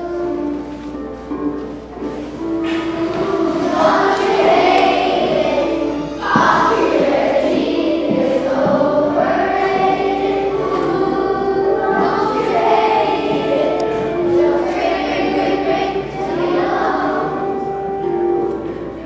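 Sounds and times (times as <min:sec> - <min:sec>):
children singing in chorus: 0:00.0 - 0:00.7, 0:02.6 - 0:19.0.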